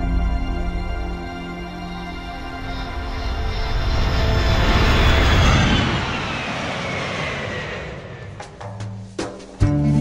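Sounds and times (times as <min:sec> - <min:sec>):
background music: 0:00.0 - 0:04.9, 0:08.4 - 0:10.0
whoosh with falling pitch: 0:02.6 - 0:08.6.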